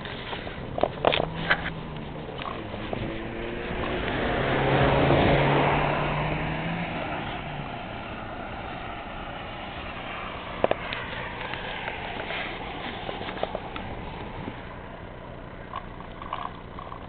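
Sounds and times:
vehicle passing by: 0.0s - 15.8s.

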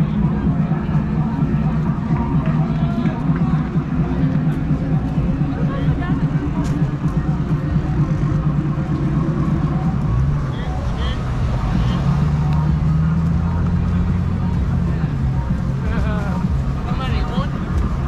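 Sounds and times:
indistinct voices: 0.0s - 18.0s
low street rumble: 0.0s - 18.0s
car engine passing: 7.1s - 16.9s.

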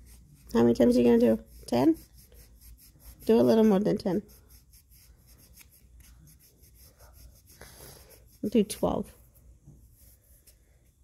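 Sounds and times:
nail buffer rubbing fingernail: 0.0s - 8.8s.

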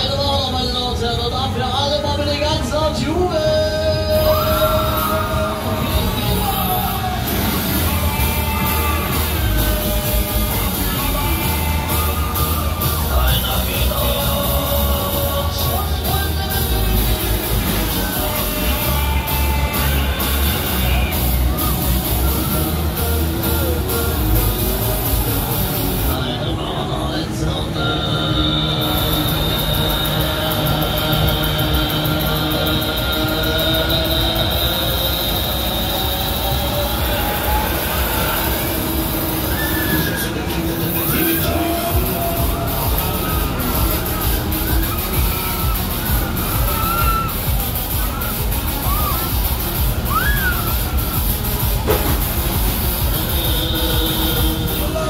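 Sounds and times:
fairground ride mechanical whine: 0.0s - 55.0s
loud ride music: 0.0s - 55.0s.

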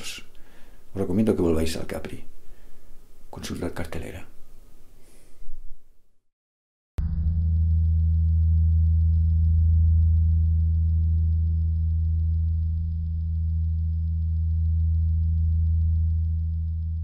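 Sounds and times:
deep low drone: 7.0s - 17.0s.

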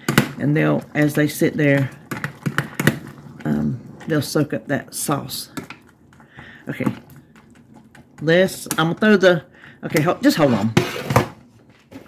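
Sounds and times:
spoon stirring wet food: 0.6s - 10.5s.

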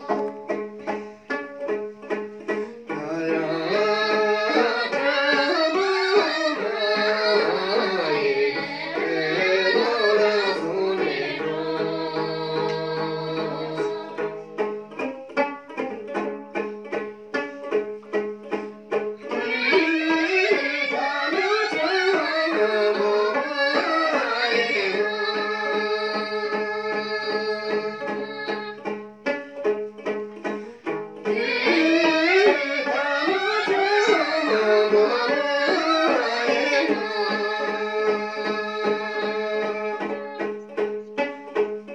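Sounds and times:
plucked lute strumming: 0.0s - 41.9s
women singing together: 3.0s - 14.4s, 19.3s - 28.8s, 31.3s - 40.4s.

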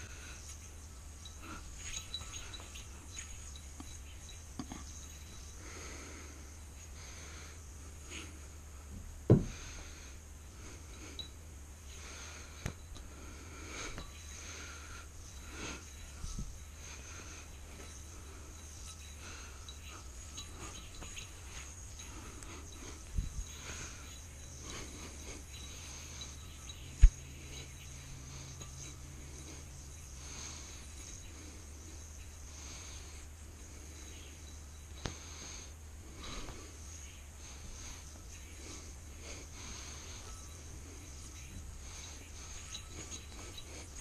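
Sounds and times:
low steady hum: 0.0s - 44.0s
yoyo string rustling: 0.0s - 44.0s.

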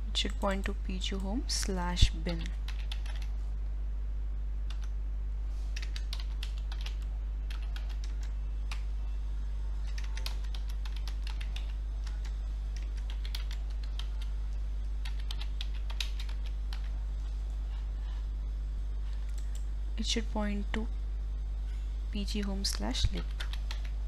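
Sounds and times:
steady low hum: 0.0s - 24.0s
keyboard typing: 2.1s - 3.3s, 4.7s - 5.0s, 5.7s - 8.9s, 9.8s - 14.4s, 15.0s - 17.0s, 19.1s - 19.7s, 22.4s - 24.0s.

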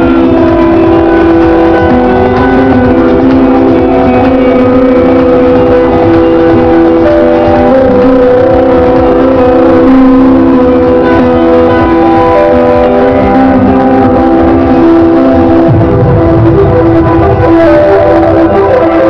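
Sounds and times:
hardcore dance music: 0.0s - 19.0s.

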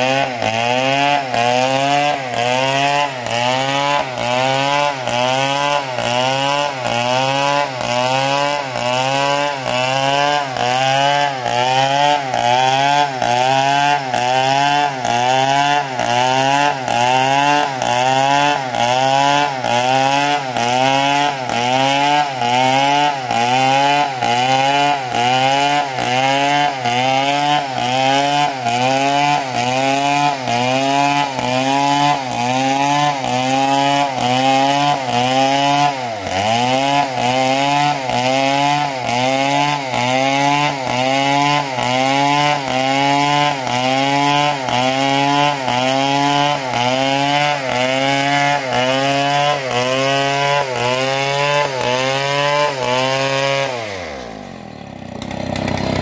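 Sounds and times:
chainsaw cutting through log: 0.0s - 56.0s.

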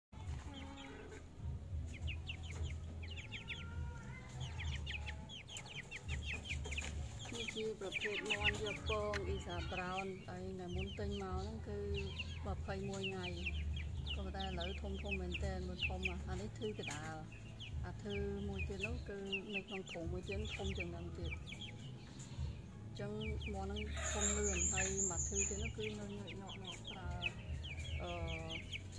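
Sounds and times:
chickens clucking: 0.2s - 28.9s
chicks peeping: 0.2s - 28.9s.

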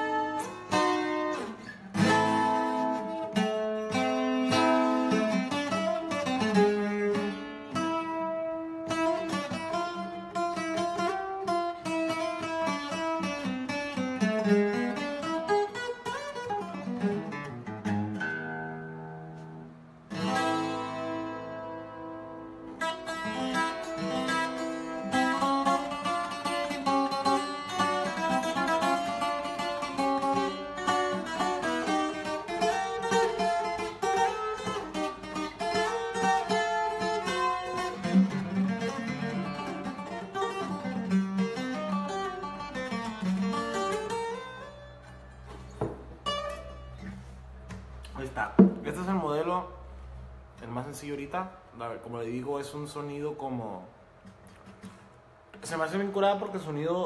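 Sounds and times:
twelve-string acoustic guitar: 0.0s - 52.3s.

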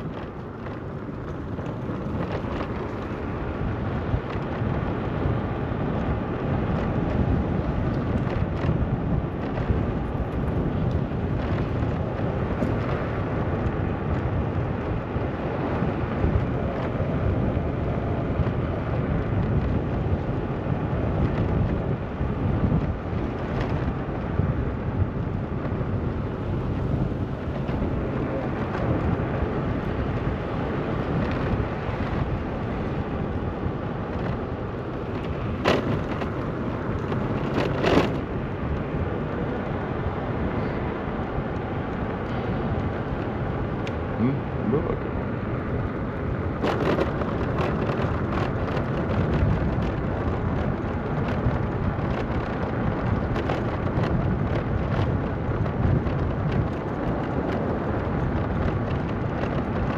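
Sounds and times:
wind rumble on microphone: 0.0s - 59.9s.

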